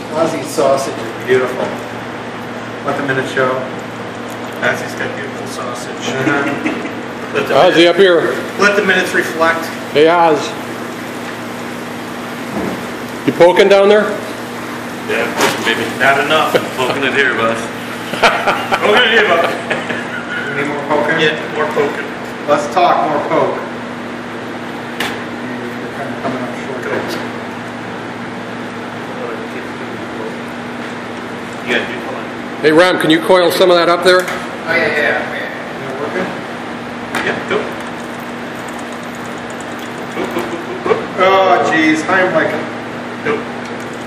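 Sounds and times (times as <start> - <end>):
machine hum: 0.0 - 44.0.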